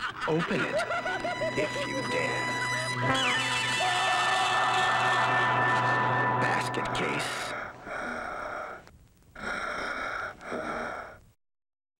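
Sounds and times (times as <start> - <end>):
raspy breathy gasps: 7.4 - 11.3.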